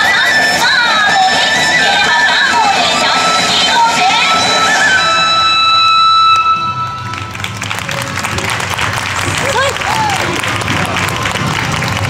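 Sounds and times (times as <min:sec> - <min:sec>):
dance music from speaker: 0:00.0 - 0:12.0
audience applauding: 0:06.8 - 0:12.0.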